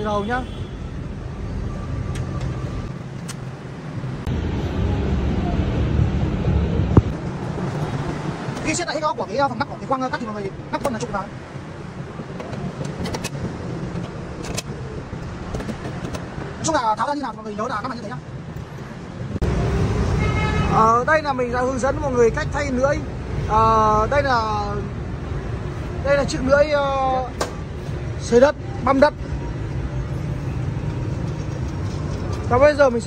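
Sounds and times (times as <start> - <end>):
distant road traffic rumble: 0.0 - 33.0.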